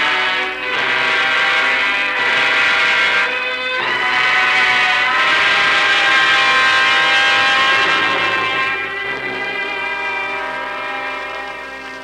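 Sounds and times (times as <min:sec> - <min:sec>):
orchestral sustained chords: 0:00.0 - 0:12.0.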